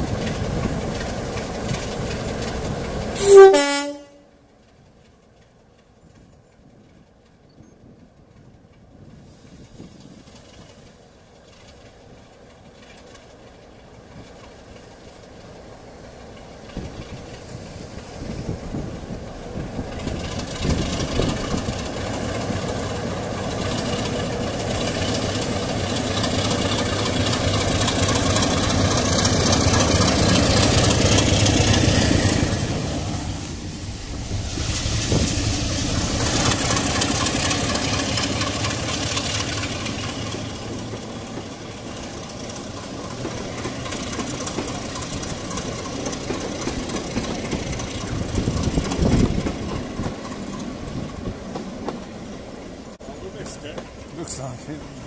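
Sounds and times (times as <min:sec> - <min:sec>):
diesel locomotive engine: 0:00.0 - 0:55.0
train coaches rolling: 0:00.0 - 0:55.0.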